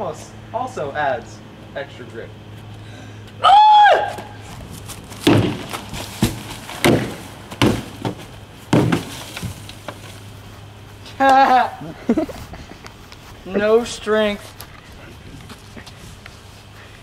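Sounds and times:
person shouting: 3.4 - 4.4
stick knocking plastic trash can: 5.2 - 9.6.

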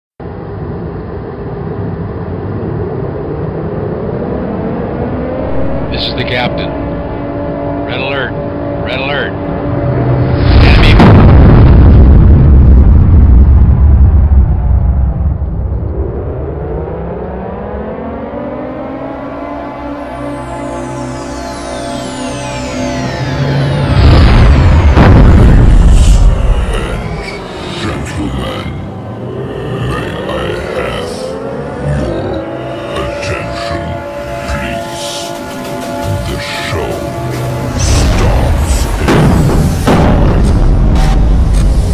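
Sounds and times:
layered tone rising in pitch: 1.2 - 10.6, 14.5 - 27.6, 28.8 - 38.7
deep voice speaking: 5.8 - 6.8, 7.8 - 9.4, 10.5 - 11.0, 25.5 - 39.1
explosion blast and rumble: 9.9 - 16.5, 23.2 - 29.0, 36.0 - 41.9.

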